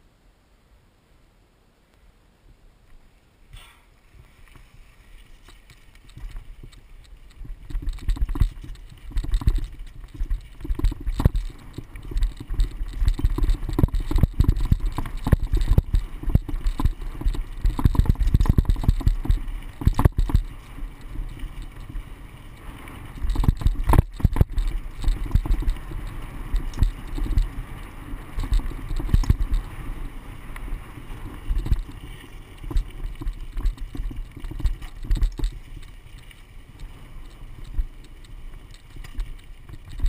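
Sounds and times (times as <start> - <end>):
wind rumbling on microphone: 2.5 - 40.0
bike tyres on dirt trail: 2.7 - 40.0
bike rattle: 3.6 - 40.0.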